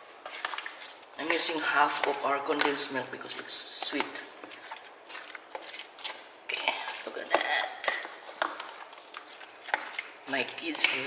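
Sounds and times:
wet squelching of stirring: 0.0s - 11.0s
spatula knocking on plastic: 1.2s - 4.6s.

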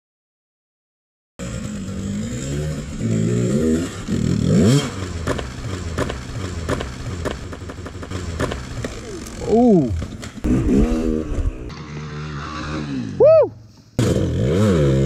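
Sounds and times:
dirt bike engine revving: 1.4s - 13.2s, 14.0s - 15.0s
bike knocking on rocks: 5.2s - 9.3s.

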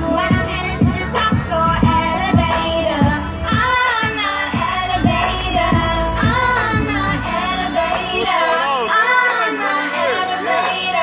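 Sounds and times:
woman singing pop song live: 0.0s - 11.0s
deep kick drum: 0.3s - 3.8s, 4.6s - 7.0s.

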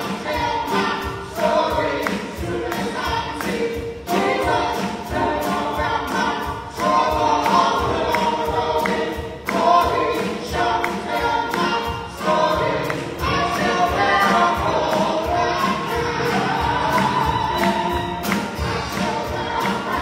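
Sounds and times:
group singing worship song: 0.0s - 20.0s
live band with drum beat: 0.0s - 20.0s.

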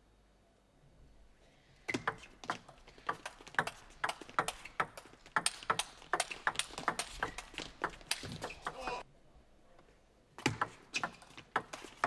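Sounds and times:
table tennis ball clicking: 1.9s - 8.8s.

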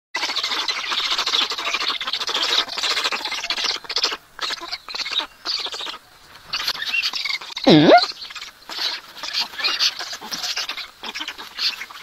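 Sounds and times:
stork nestlings begging calls: 0.2s - 12.0s.

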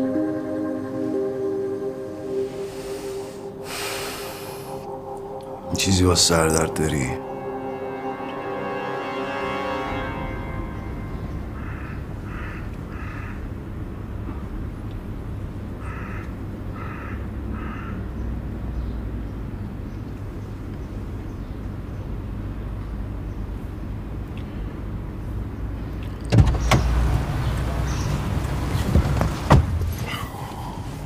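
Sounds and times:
street ambience rumble: 0.0s - 31.0s
car door opening clunk: 26.3s - 27.2s, 28.2s - 30.1s.

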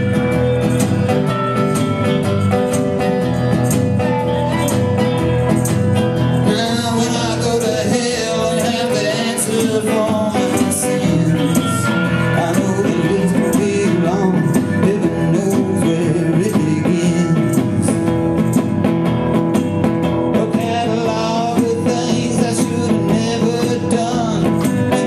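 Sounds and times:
blues band playing: 0.0s - 25.0s.

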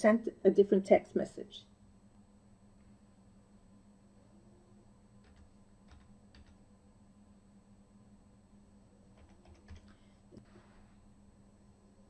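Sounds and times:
low steady hum: 0.0s - 12.0s
keystrokes on computer keyboard: 5.2s - 6.6s, 9.1s - 10.0s.

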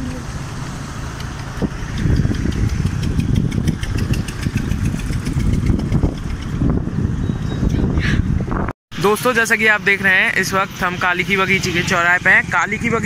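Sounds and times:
vehicle engine running: 0.0s - 13.0s
fast regular ticking: 1.2s - 6.6s.

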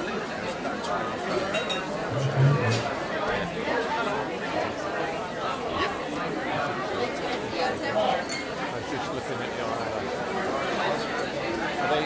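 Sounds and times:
many voices chattering: 0.0s - 12.0s.

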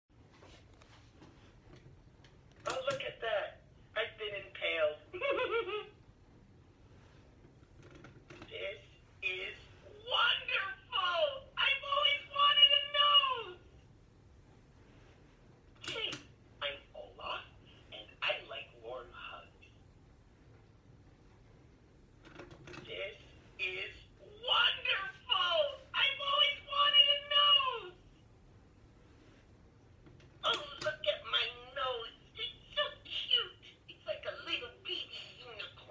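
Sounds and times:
toy voice talking through speaker: 8.4s - 13.7s, 15.8s - 19.6s, 22.8s - 28.0s, 30.4s - 35.9s.

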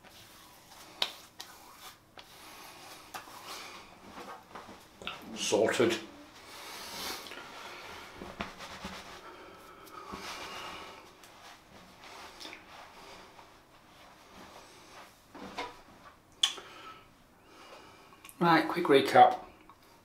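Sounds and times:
rubbing and rustling handling noises: 0.0s - 16.3s
breathing: 16.6s - 18.2s.

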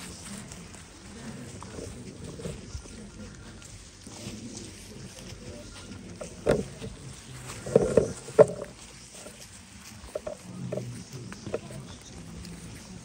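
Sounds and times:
footsteps crunching dry leaves: 0.0s - 13.0s.

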